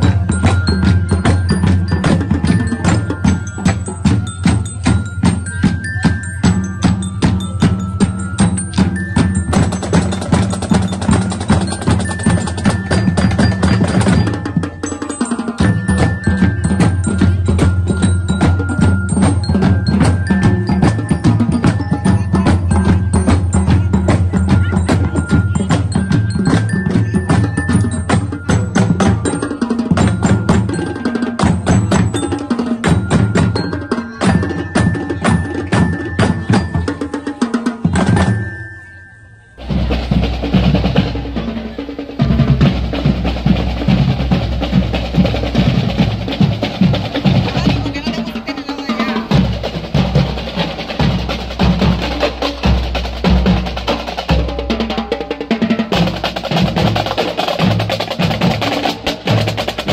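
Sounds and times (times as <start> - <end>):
marching band drums: 0.0 - 38.6, 39.6 - 59.9
bell lyres melody: 0.0 - 59.9
bass drum: 39.6 - 54.9.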